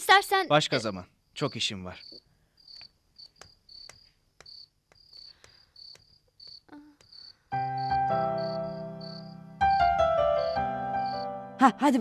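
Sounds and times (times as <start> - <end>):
crickets chirping: 0.0 - 12.0
keyboard chord background music: 7.5 - 12.0.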